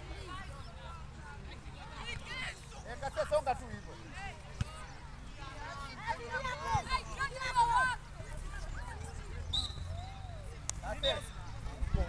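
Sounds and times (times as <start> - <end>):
players and spectators shouting: 5.4 - 12.0.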